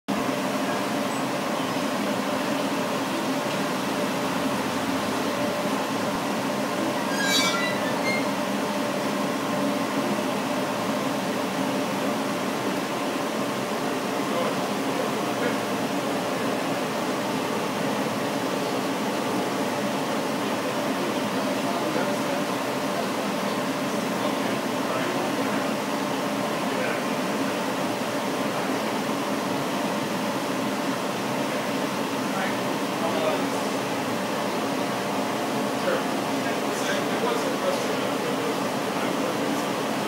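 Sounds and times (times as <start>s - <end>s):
laser engraving machine hum: 0.1s - 40.0s.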